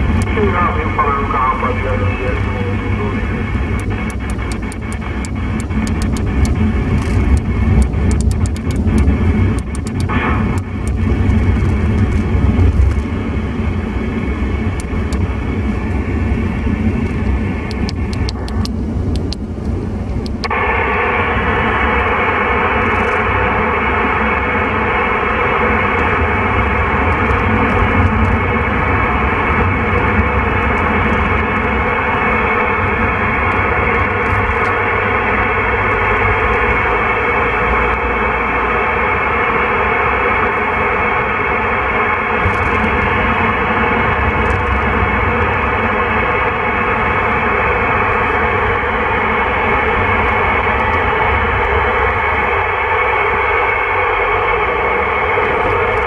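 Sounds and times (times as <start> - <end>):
open-channel radio hiss: 0.0 - 7.2, 7.9 - 11.8, 20.4 - 56.0
radio static: 0.0 - 13.1, 14.1 - 19.4, 20.1 - 56.0
car rumble on road: 0.0 - 56.0
channel switch clicks: 17.7 - 19.4.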